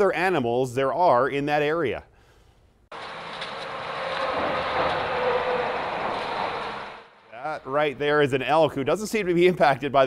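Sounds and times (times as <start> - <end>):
traffic rushing overhead: 2.9 - 8.8.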